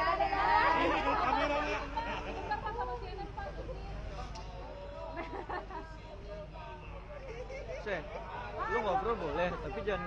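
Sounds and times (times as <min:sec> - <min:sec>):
crowd of voices chattering: 0:00.0 - 0:10.0.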